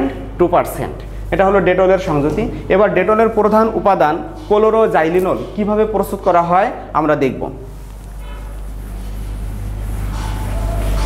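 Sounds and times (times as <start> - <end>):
low electrical hum: 0.0 - 11.0
duster scrubbing whiteboard: 7.7 - 11.0.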